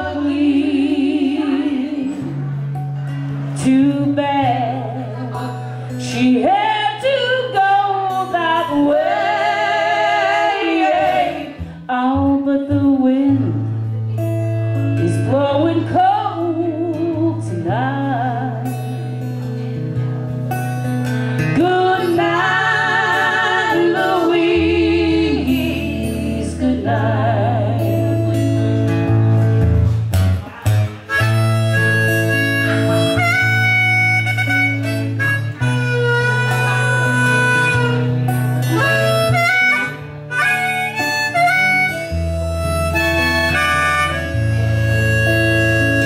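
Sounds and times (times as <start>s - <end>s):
acoustic guitar strummed: 0.0s - 46.0s
harmonica playing: 31.0s - 46.0s.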